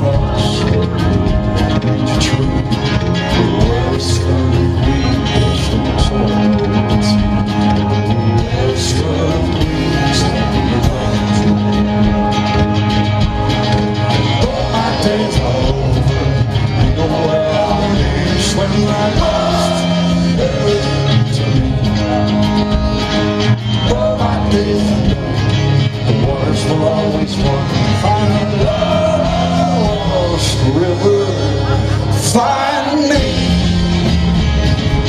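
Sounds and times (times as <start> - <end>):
drums with cymbal hits: 0.0 - 30.7
bass guitar: 0.0 - 35.0
electric guitar: 0.0 - 35.0
keyboard: 0.0 - 35.0.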